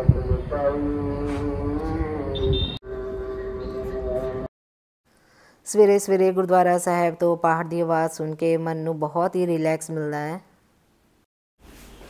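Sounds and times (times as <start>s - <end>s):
chanting over a loudspeaker: 0.0s - 2.6s.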